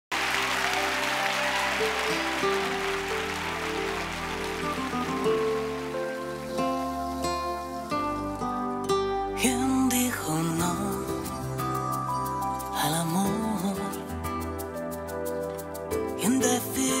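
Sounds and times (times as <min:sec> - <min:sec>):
audience applause: 0:00.1 - 0:07.8
slow pop ballad: 0:00.2 - 0:17.0.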